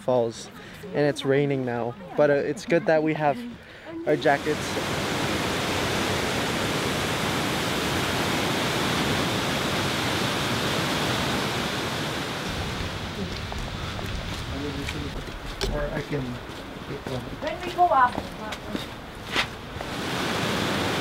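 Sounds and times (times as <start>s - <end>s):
water rushing into rock gorge: 4.1s - 18.1s, 19.1s - 21.0s.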